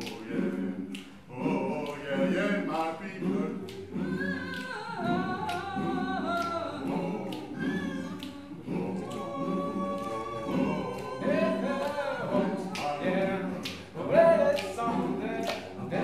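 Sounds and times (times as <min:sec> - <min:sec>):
mixed choir singing a cappella: 0:00.0 - 0:16.0.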